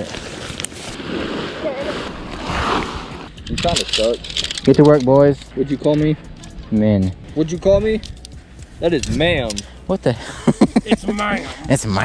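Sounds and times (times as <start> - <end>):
tent fabric rustling: 0.0 - 3.3.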